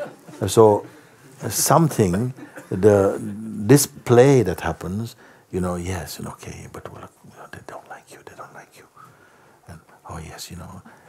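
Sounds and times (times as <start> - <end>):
man whispering: 6.0 - 11.0.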